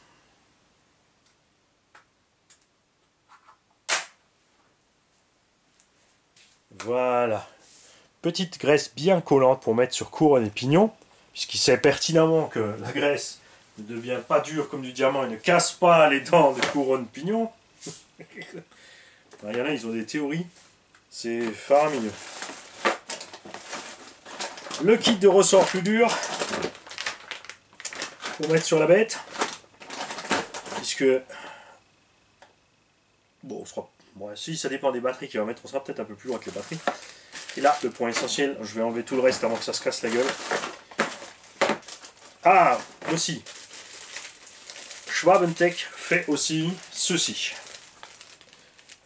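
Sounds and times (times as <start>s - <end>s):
loud sharp click: 3.9s - 4.2s
plastic bags rustling and crinkling: 11.9s - 17.5s, 21.2s - 31.2s, 35.6s - 49.0s.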